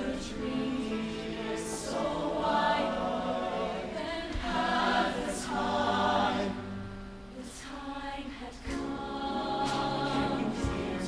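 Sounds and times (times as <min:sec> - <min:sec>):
choir singing harmony: 0:00.0 - 0:11.0.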